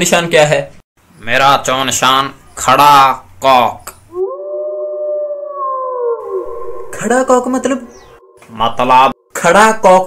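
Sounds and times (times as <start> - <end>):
dog howling: 4.1 - 9.2.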